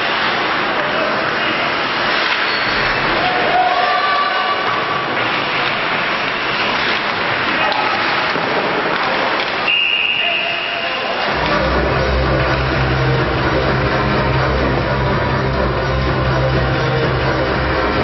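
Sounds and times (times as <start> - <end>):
hockey play on ice: 0.0 - 13.0
crowd voices: 0.0 - 18.0
people shouting: 3.0 - 5.2
referee whistle: 9.6 - 11.2.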